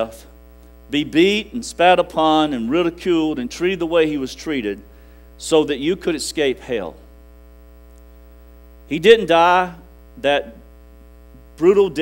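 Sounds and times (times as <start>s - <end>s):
electrical mains hum: 0.0s - 12.0s
man's voice: 0.9s - 4.8s, 8.9s - 10.6s, 11.6s - 12.0s.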